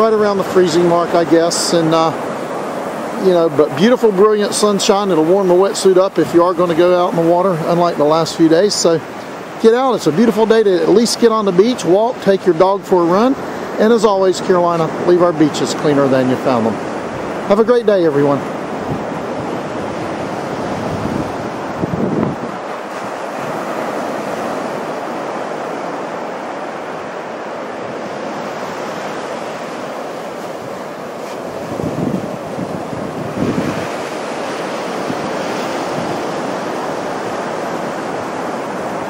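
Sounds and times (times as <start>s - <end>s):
ocean waves breaking: 0.0s - 39.0s
wind buffeting microphone: 0.0s - 39.0s.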